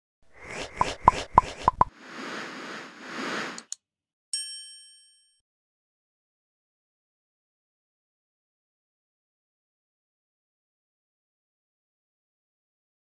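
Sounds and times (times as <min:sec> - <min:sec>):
rising and falling whooshes: 0:00.3 - 0:03.7
quick plops: 0:00.4 - 0:01.9
bright bell-like ding: 0:04.4 - 0:05.4.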